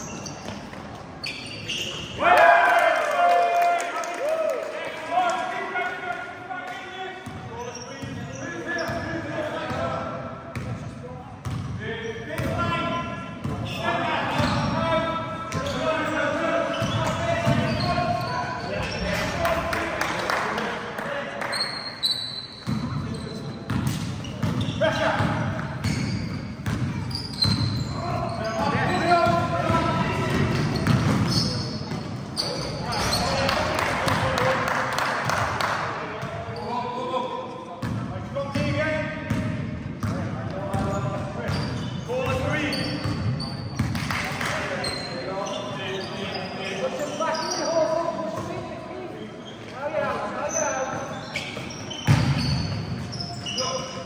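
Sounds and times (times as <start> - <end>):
sneakers squeaking: 0.0 - 2.2, 7.2 - 20.4, 21.4 - 34.5, 36.2 - 54.0
basketball bouncing on court: 11.4 - 11.8, 22.6 - 23.0, 23.7 - 27.9, 28.5 - 32.1, 37.8 - 44.2, 51.6 - 53.2.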